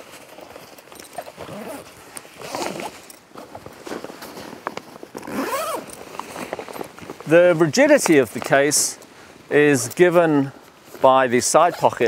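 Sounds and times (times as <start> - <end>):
bag rustling and clicks: 0.0 - 8.6
zipper on fabric bag: 1.2 - 3.1, 5.2 - 6.0.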